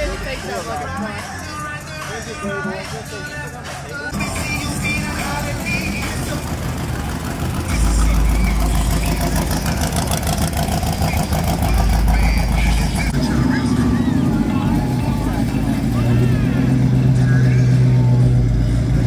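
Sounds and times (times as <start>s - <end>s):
pickup truck engine rumbling: 0.0s - 19.0s.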